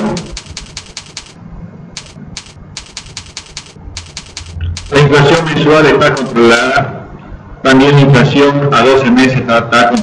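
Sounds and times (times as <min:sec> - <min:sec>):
keyboard keys clicking: 0:00.0 - 0:01.4, 0:02.0 - 0:06.7
faint low hum: 0:00.0 - 0:10.0.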